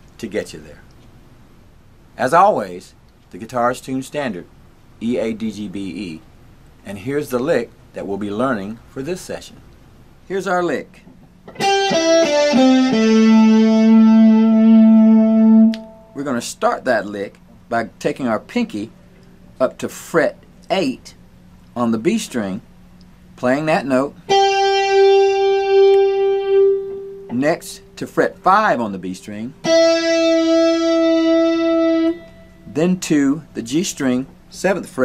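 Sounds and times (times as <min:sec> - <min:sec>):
electric guitar lick: 0:11.4 - 0:16.2, 0:24.3 - 0:27.4, 0:29.6 - 0:32.7
electric guitar held note: 0:24.3 - 0:27.4.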